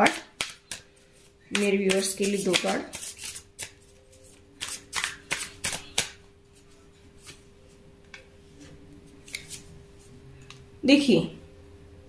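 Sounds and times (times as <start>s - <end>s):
cards snapping on wooden table: 4.6s - 6.2s.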